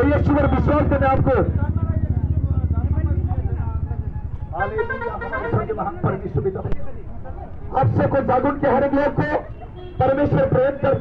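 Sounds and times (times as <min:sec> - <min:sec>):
motorcycle engine running: 0:00.0 - 0:08.8.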